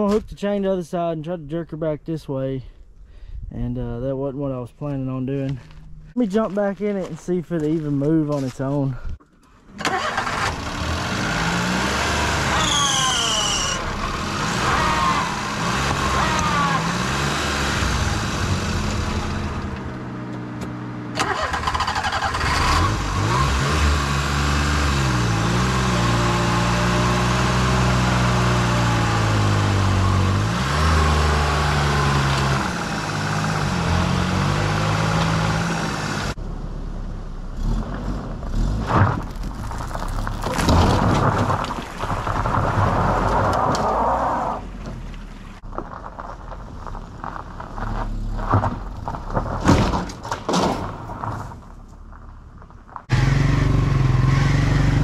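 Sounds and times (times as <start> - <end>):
truck engine revving: 9.9 - 20.2, 21.1 - 36.5, 53.1 - 55.0.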